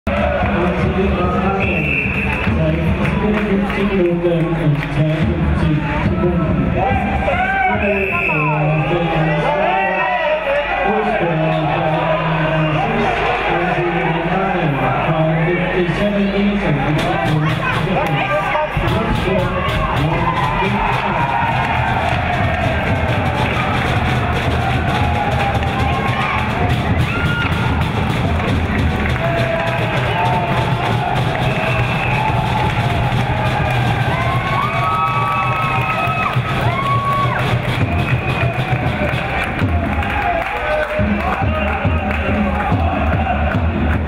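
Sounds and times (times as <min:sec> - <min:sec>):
crowd cheering and shouting: 0:00.0 - 0:44.0
whistles: 0:01.6 - 0:02.5, 0:07.8 - 0:09.0, 0:31.4 - 0:32.4.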